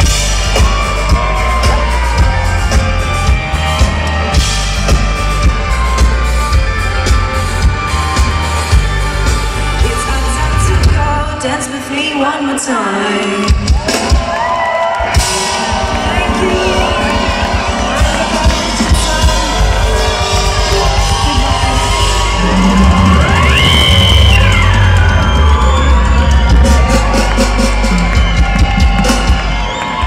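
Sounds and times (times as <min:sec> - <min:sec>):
crowd shouting: 0:00.0 - 0:07.0, 0:13.8 - 0:30.0
live band playing dance-pop: 0:00.0 - 0:30.0.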